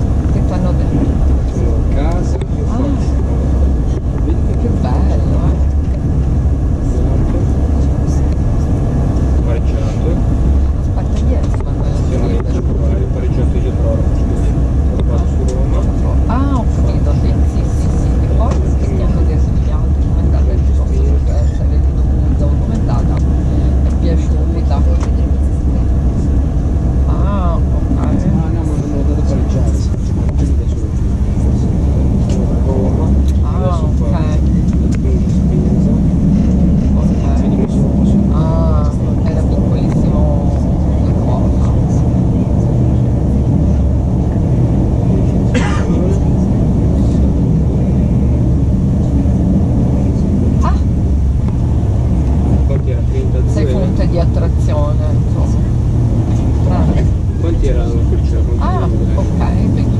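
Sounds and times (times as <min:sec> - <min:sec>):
train cabin rumble: 0:00.0 - 0:59.9
voices: 0:00.0 - 0:59.9.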